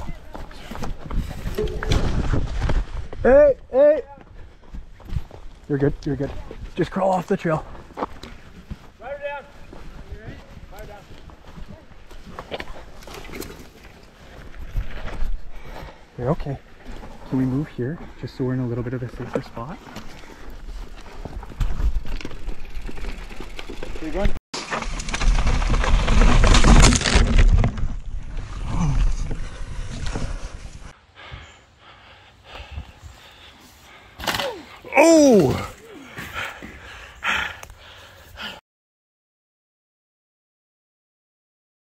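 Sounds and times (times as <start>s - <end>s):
mountain bike rattling over rocks: 12.3s - 15.0s, 19.2s - 30.6s
person moaning: 34.4s - 36.2s.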